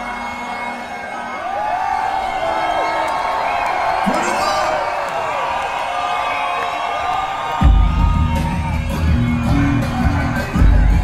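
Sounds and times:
concert crowd cheering and whooping: 0:00.0 - 0:11.0
bass-heavy music: 0:07.6 - 0:11.0.

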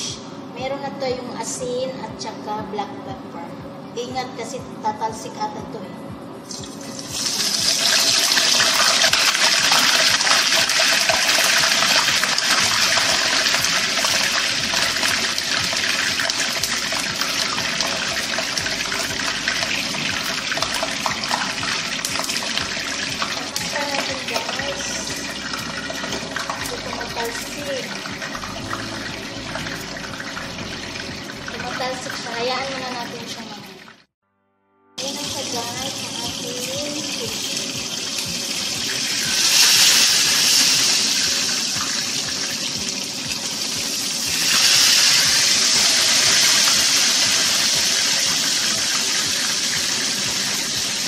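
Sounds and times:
fish sizzling in hot oil: 0:06.5 - 0:32.6, 0:35.0 - 0:51.0.

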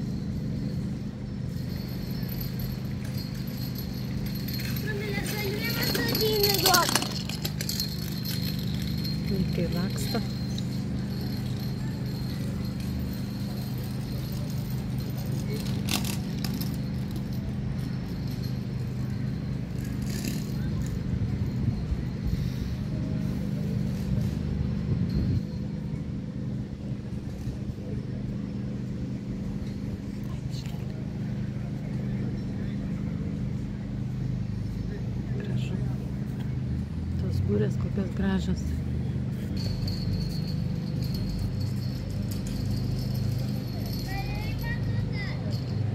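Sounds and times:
low mechanical hum: 0:00.0 - 0:45.9
people's voices: 0:03.8 - 0:18.4.

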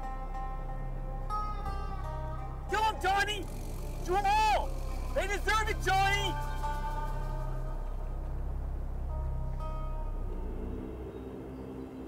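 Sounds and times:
low hum: 0:00.0 - 0:12.0
quiet background music: 0:00.0 - 0:12.0.

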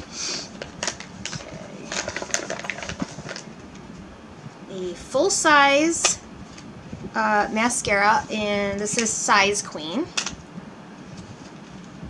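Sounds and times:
crinkly packaging rustles: 0:00.4 - 0:04.1.

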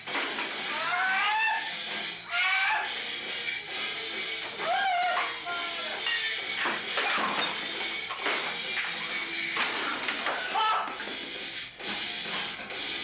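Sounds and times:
person crying out: 0:00.7 - 0:02.9, 0:04.6 - 0:05.8, 0:10.5 - 0:10.9.

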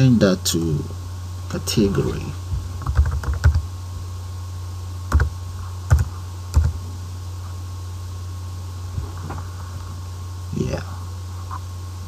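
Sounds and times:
steady low hum: 0:00.0 - 0:12.0
keyboard typing: 0:02.8 - 0:03.6, 0:05.1 - 0:05.3, 0:05.9 - 0:06.8.

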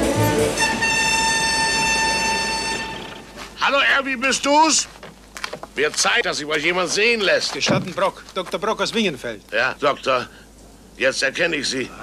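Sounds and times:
orchestral background music: 0:00.0 - 0:02.6.

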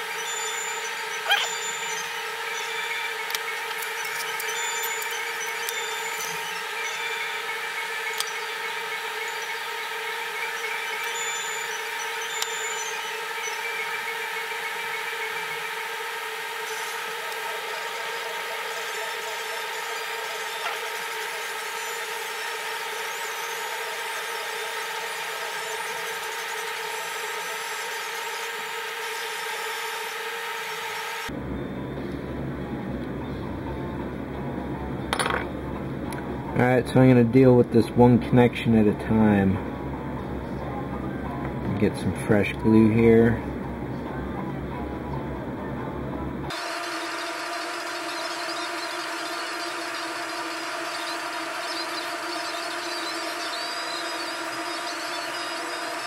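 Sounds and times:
steady background hum: 0:00.0 - 0:56.0.

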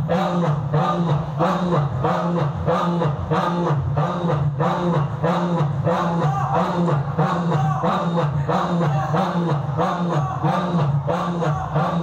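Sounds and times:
men chanting in unison: 0:00.0 - 0:12.0.

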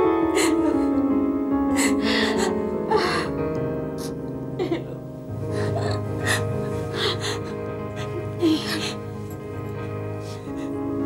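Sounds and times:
background music: 0:00.0 - 0:11.0
woman crying and sobbing: 0:00.2 - 0:03.4, 0:04.0 - 0:11.0.

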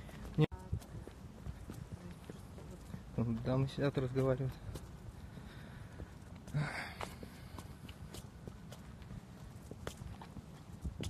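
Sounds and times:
footsteps on hard surface: 0:00.0 - 0:05.4, 0:06.0 - 0:11.0.

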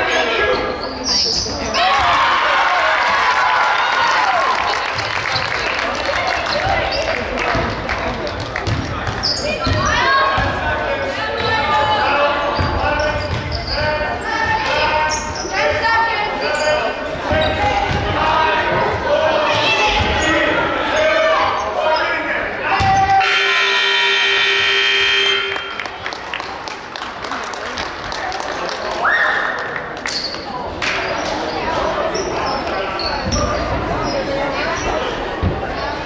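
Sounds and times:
voices in echoing hall: 0:00.0 - 0:36.0
scoreboard horn: 0:23.2 - 0:25.9.

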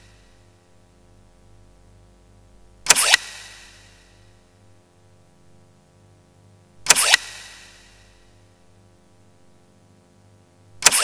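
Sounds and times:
low background music drone: 0:00.0 - 0:00.8
whoosh and hit effect: 0:02.9 - 0:04.0, 0:06.9 - 0:08.0.

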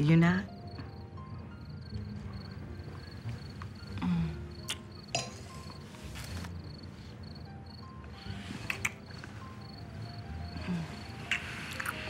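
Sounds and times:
cricket chirps: 0:00.0 - 0:12.0
quiet background music: 0:00.0 - 0:12.0.

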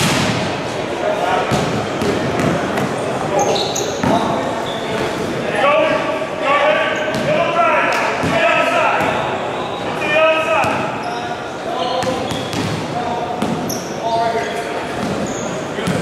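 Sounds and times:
sneaker squeaks: 0:03.3 - 0:05.2, 0:06.8 - 0:07.4, 0:08.2 - 0:16.0
basketballs bouncing on wooden floor: 0:07.1 - 0:07.4, 0:12.0 - 0:13.8.

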